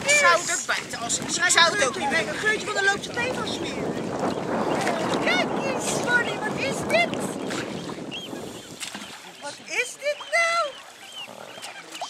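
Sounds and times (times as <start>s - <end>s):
water rushing around swimming dog: 0.0s - 12.0s
wind on microphone: 0.0s - 12.0s.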